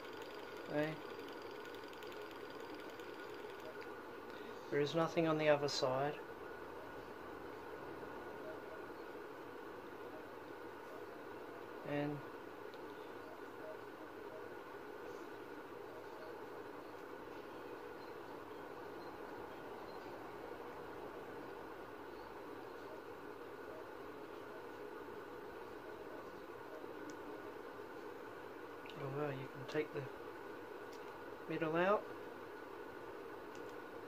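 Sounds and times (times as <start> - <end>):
faint constant hum: 0.0 - 34.0
low room hiss: 0.0 - 34.0
faint small clicks: 33.5 - 33.8.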